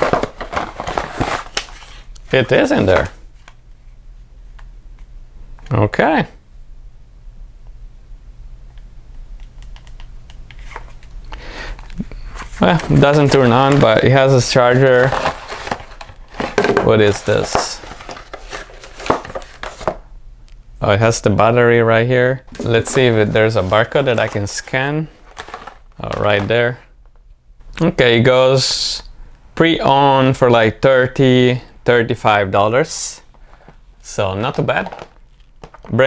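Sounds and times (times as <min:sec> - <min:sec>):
cardboard box rustling and scraping: 0:00.0 - 0:02.0, 0:14.7 - 0:20.0, 0:25.2 - 0:25.8.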